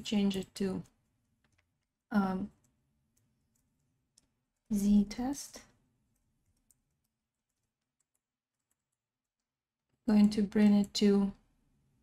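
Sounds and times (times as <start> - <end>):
faint keyboard clicks: 0.2 - 4.8, 5.6 - 11.0.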